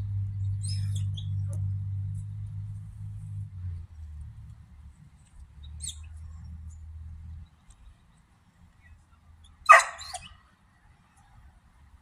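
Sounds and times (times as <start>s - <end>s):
dog barking: 9.7s - 10.3s
dog yelping: 9.7s - 10.3s.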